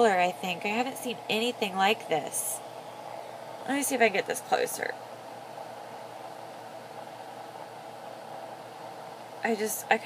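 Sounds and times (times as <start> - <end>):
background hiss: 0.0 - 10.0
faint hum: 0.0 - 10.0.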